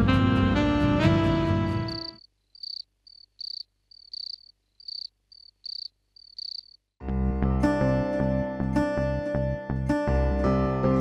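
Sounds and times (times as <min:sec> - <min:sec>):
background music: 0:00.0 - 0:02.2, 0:07.0 - 0:11.0
crickets chirping: 0:01.9 - 0:06.9.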